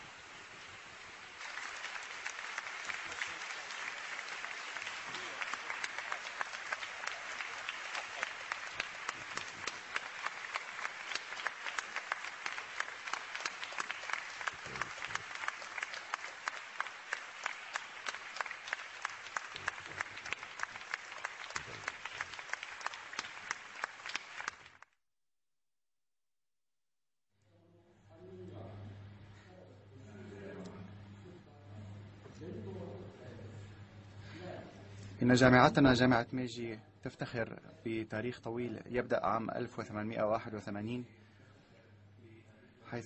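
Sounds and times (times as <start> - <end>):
audience applauding: 0.0 - 25.0.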